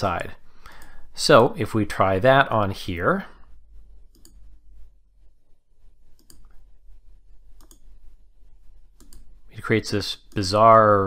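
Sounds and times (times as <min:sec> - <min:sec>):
faint low electrical hum: 0:00.0 - 0:11.0
computer mouse clicks: 0:04.1 - 0:04.5, 0:06.1 - 0:06.6, 0:07.6 - 0:07.9, 0:09.0 - 0:09.3.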